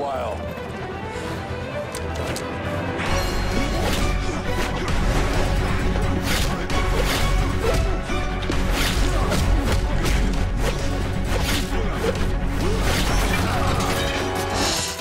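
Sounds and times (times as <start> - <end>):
punches and impacts: 7.6 - 11.7.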